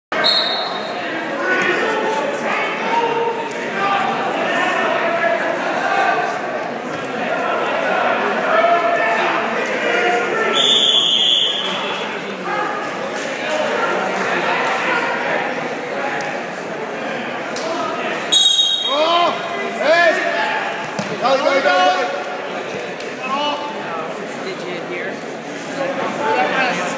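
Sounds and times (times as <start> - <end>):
crowd talking and calling out: 0.1 - 26.9.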